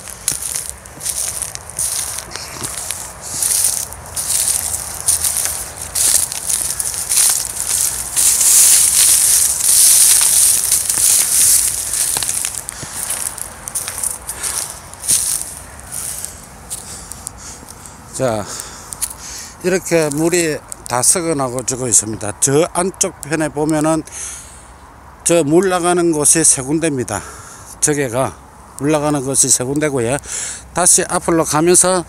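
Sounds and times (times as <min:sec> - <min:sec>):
footsteps through dry grass: 0:00.0 - 0:22.1.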